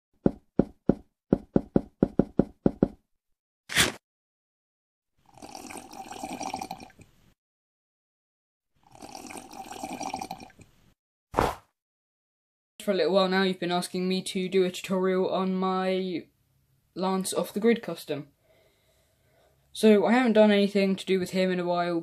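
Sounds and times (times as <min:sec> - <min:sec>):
slurping sips from a mug: 0:05.2 - 0:07.1, 0:08.8 - 0:10.7.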